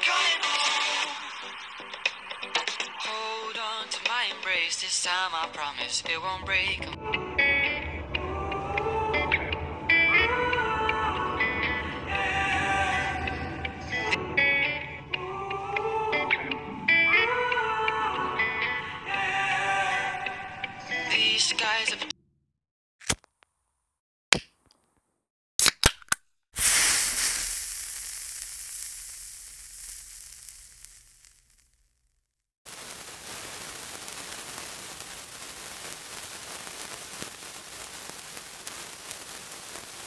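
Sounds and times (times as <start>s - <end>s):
fire hissing and crackling: 0.4s - 4.9s, 26.6s - 32.0s, 32.7s - 40.0s
sharp cracks: 25.6s - 32.1s, 32.7s - 40.0s
rushing burst of flame: 26.6s - 31.8s, 32.7s - 40.0s.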